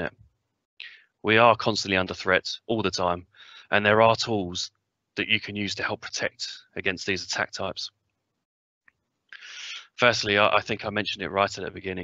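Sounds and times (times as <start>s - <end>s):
short breath in: 3.3s - 3.7s, 9.4s - 9.9s.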